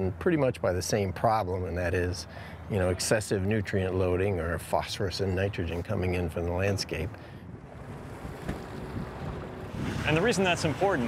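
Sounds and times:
wind buffeting microphone: 6.8s - 11.0s
low rumble: 7.4s - 10.3s.

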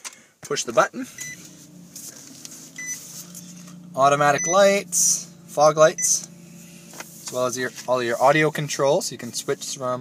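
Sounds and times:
car engine starting and idling: 0.0s - 10.0s
car chime beeps: 1.1s - 1.6s, 2.7s - 6.9s.

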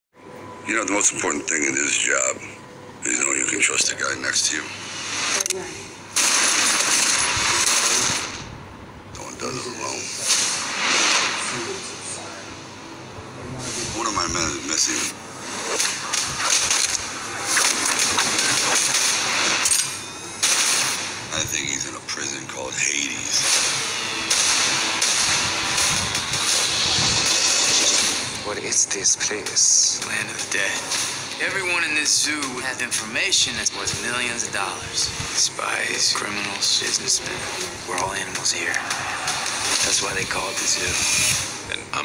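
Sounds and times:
hissing metallic noise: 4.1s - 8.5s, 9.2s - 21.3s, 21.9s - 41.7s.

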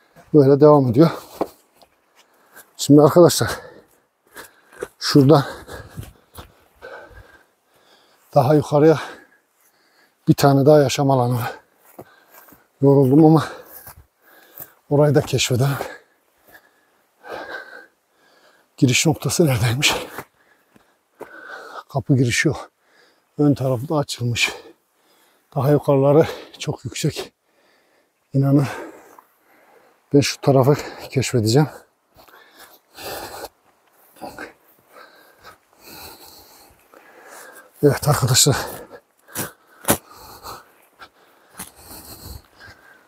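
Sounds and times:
man breathing out heavily: 3.4s - 8.3s, 9.0s - 10.2s, 11.4s - 12.7s, 13.4s - 14.9s, 15.8s - 18.8s, 20.0s - 21.9s, 22.7s - 23.3s, 24.5s - 25.5s, 27.3s - 30.1s, 32.2s - 37.8s, 38.5s - 43.0s.

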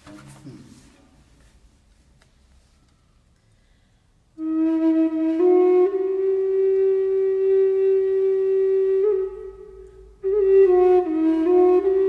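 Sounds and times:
flute holding a long note: 4.4s - 12.0s.

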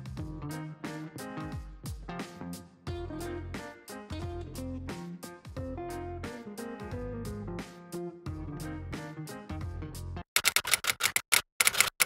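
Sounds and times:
guitar background music: 0.0s - 10.2s
typewriter key clicks: 10.4s - 12.0s.

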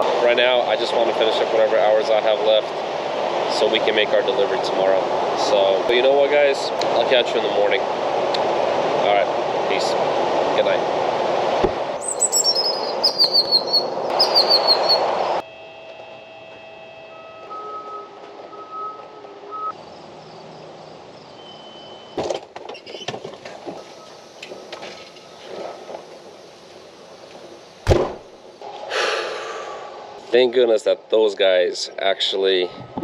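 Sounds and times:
loud steady rushing noise: 0.0s - 12.0s
birds chirping: 12.0s - 15.4s
faint steady tones: 15.4s - 19.8s
sharp knock: 27.9s - 28.2s.

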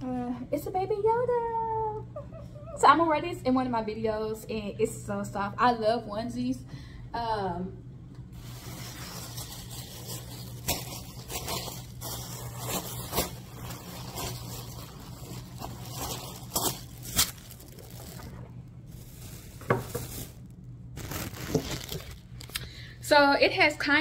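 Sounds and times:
steady low hum: 0.0s - 24.0s
cloth rustling: 8.4s - 22.4s.

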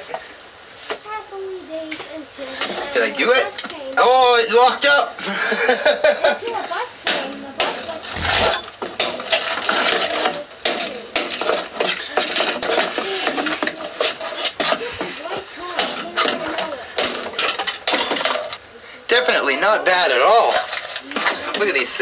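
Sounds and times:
cracking and rattling debris: 6.0s - 18.6s, 20.3s - 22.0s.

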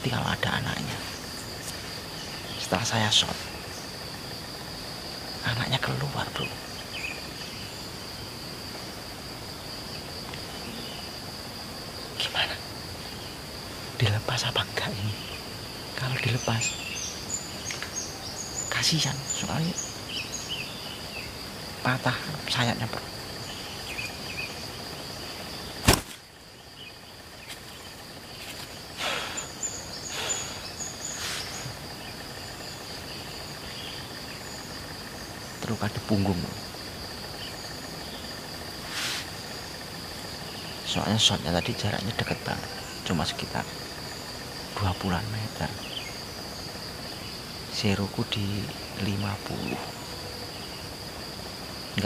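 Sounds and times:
faint pulsing chirp: 0.0s - 52.0s
high-pitched insect drone: 0.0s - 52.0s
rustle-like burst of noise: 30.1s - 31.8s, 38.8s - 39.5s.

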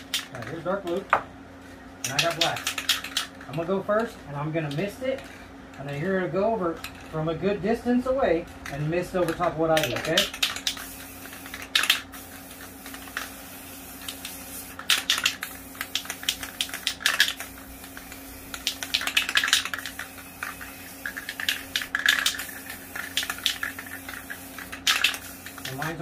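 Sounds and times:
spray can ball rattling: 2.0s - 6.1s, 8.5s - 26.0s
spray paint hissing: 2.1s - 3.4s, 9.2s - 26.0s.

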